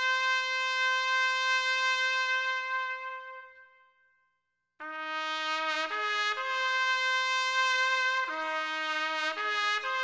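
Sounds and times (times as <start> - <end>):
trumpet holding long note: 0.0 - 3.8, 4.8 - 10.0.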